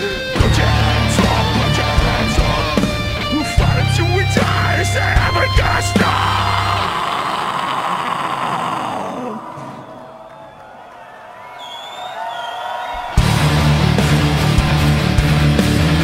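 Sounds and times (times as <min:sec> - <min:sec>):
heavy metal band playing: 0:00.0 - 0:08.3, 0:13.2 - 0:16.0
crowd cheering and yelling: 0:00.0 - 0:16.0.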